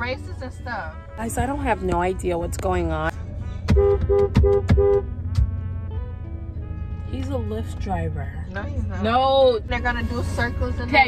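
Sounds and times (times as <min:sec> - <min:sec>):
car horn honking: 0:00.0 - 0:11.0
low rumble of engines: 0:00.0 - 0:11.0.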